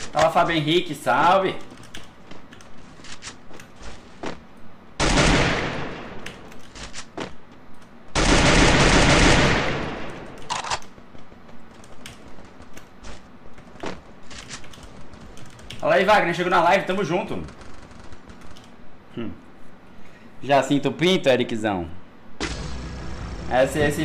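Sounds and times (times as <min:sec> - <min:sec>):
video game automatic gunfire: 0:05.0 - 0:06.2, 0:08.1 - 0:10.8, 0:17.4 - 0:18.5, 0:22.4 - 0:24.0.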